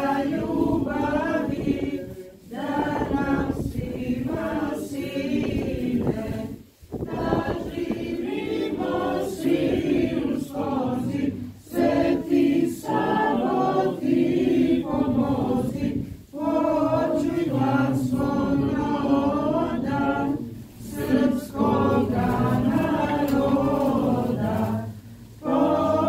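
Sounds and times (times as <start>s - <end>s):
choir singing a hymn unaccompanied: 0.0s - 26.0s.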